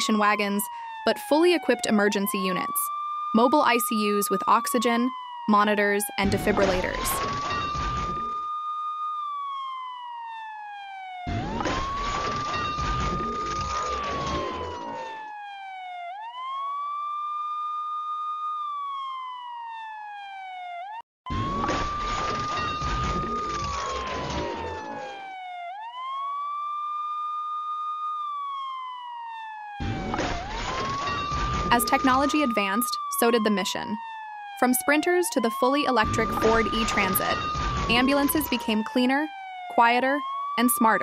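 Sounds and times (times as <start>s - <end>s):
ambulance siren wailing: 0.0s - 41.0s.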